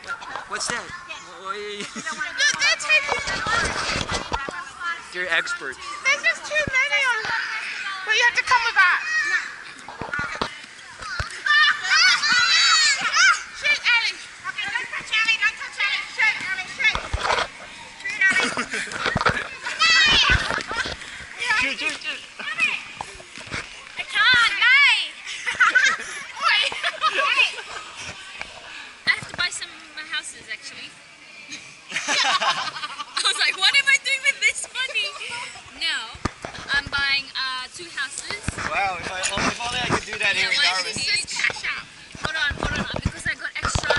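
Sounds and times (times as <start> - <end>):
voices talking and exclaiming: 0.0 - 43.9
women shouting and laughing: 2.0 - 3.6, 5.8 - 17.4, 18.0 - 28.3, 31.4 - 36.2.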